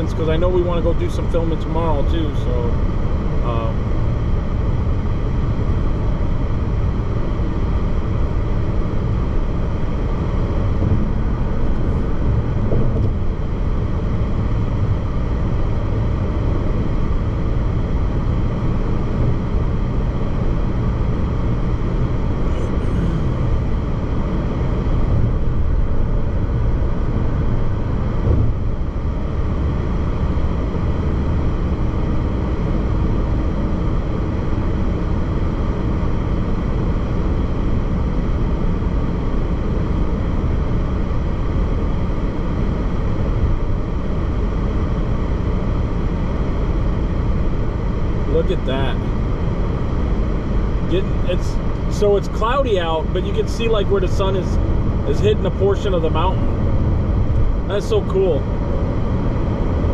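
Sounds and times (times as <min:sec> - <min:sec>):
car road noise inside cabin: 0:00.0 - 0:59.9.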